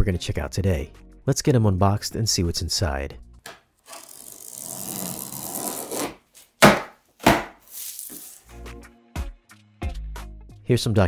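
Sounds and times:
box cutter slicing packing tape: 0:03.8 - 0:08.4
cardboard flaps ripping open: 0:04.0 - 0:08.5.

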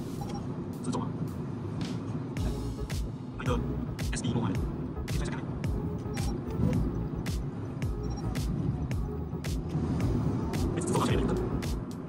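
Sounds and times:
car cabin road noise: 0:00.0 - 0:12.0.

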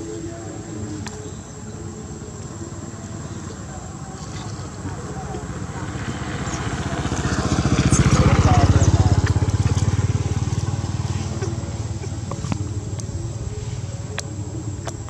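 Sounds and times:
motorcycle engine passing by: 0:03.8 - 0:15.0.

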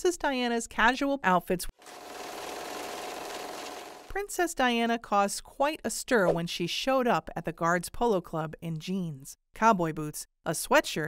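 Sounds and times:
mechanical rattling whirring: 0:01.8 - 0:04.1.

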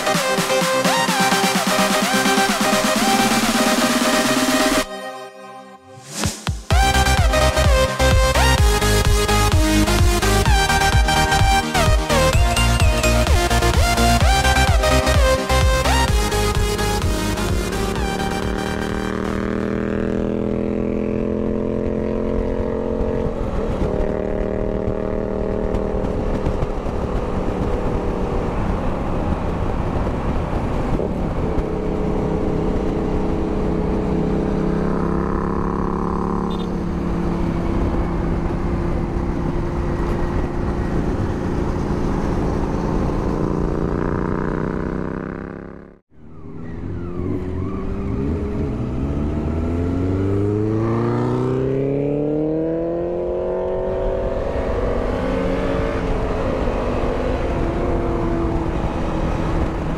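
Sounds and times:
motorcycle engine cruising: 0:00.0 - 0:04.9, 0:06.0 - 0:59.9
wind and road noise: 0:05.9 - 0:59.9.

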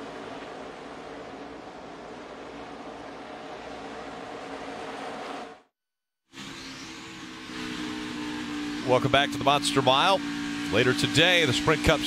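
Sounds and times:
race car engines droning: 0:00.0 - 0:05.6, 0:06.4 - 0:12.0
in-car engine running steadily: 0:07.1 - 0:12.0.

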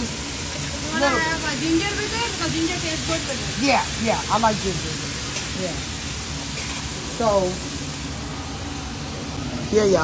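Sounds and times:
food sizzling on a griddle: 0:00.0 - 0:10.0.

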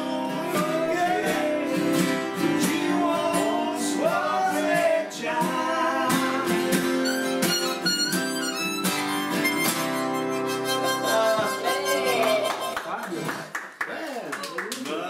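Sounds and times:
acoustic guitars strumming: 0:00.0 - 0:12.8
harmonica playing: 0:06.6 - 0:12.9.

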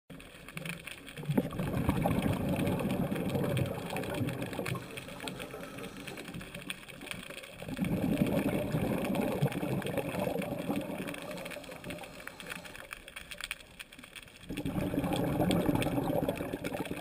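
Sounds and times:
crackling clicks: 0:00.1 - 0:17.0
muffled underwater rumbling: 0:00.2 - 0:12.8, 0:14.5 - 0:17.0.

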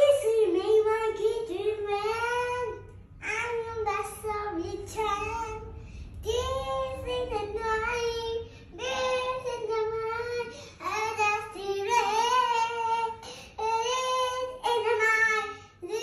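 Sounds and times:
boy singing unaccompanied: 0:00.0 - 0:16.0.

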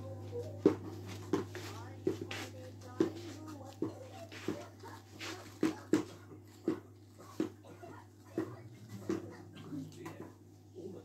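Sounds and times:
shoes knocking on hard floor: 0:00.6 - 0:07.6.

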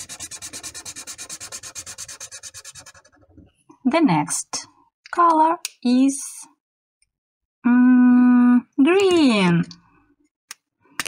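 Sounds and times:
marker scribbling on paper: 0:00.0 - 0:03.4.

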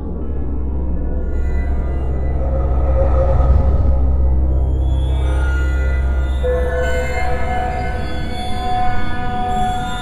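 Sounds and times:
dark ambient horror music: 0:00.0 - 0:10.0.

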